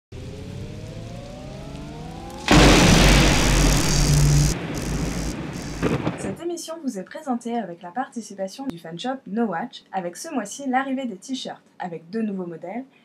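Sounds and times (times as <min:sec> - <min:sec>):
slowly rising tone: 0:00.1 - 0:05.8
thunderclap crash: 0:02.3 - 0:06.4.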